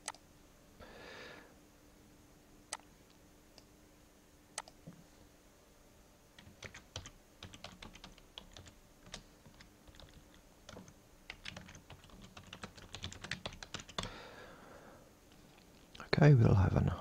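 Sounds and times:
typing on computer keyboard: 0:06.4 - 0:14.1.

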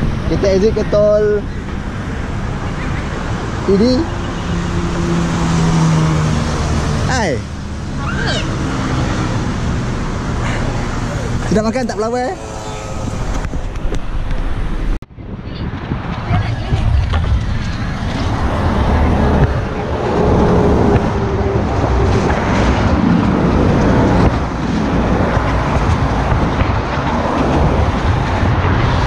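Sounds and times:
road and tyre noise: 0:00.0 - 0:29.0
wind rushing over microphone: 0:00.0 - 0:29.0.

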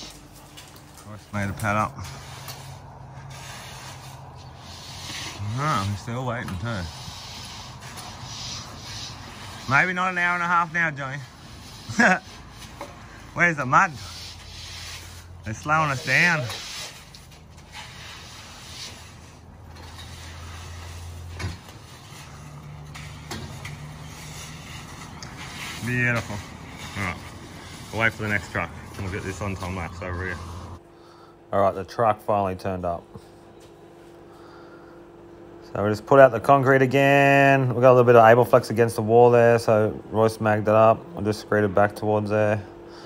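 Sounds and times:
rakes scraping wet concrete: 0:00.0 - 0:30.8
engine running: 0:00.0 - 0:31.3
constant low hum: 0:00.0 - 0:43.0.

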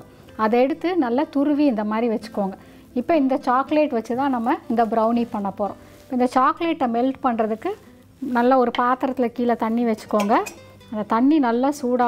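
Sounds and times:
woman talking: 0:00.4 - 0:12.0.

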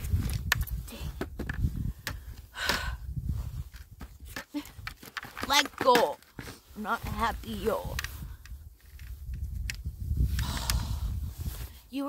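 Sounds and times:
camera microphone handling rumble: 0:00.0 - 0:11.9.

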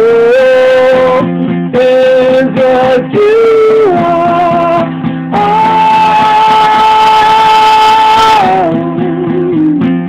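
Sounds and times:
strummed guitar chords: 0:00.0 - 0:10.0.

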